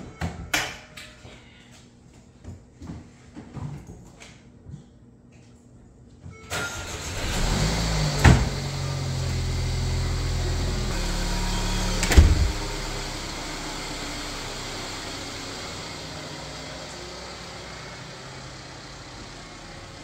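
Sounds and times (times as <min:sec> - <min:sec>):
car engine running: 0:07.0 - 0:20.0
loud thumps: 0:10.9 - 0:12.9.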